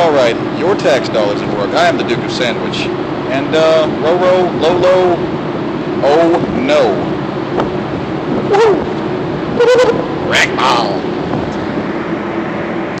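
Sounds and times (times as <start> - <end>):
even rushing noise: 0.0 - 13.0
ship machinery hum: 0.0 - 13.0
man's voice: 6.0 - 7.1, 10.2 - 11.1.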